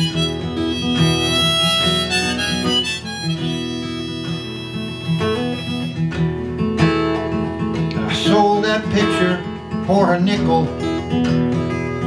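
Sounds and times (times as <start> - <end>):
harmonica: 0.0 - 6.9
strummed acoustic guitar: 0.0 - 12.0.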